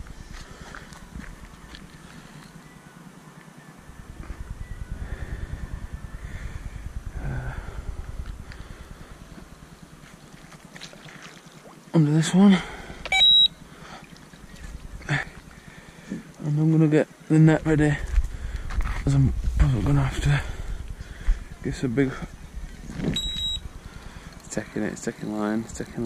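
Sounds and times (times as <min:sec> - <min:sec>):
wind buffeting microphone: 0:03.9 - 0:10.4, 0:17.6 - 0:24.6.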